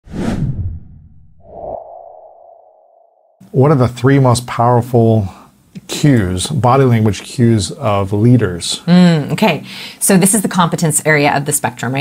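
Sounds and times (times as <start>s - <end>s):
whoosh with deep rumble: 0.0s - 3.4s.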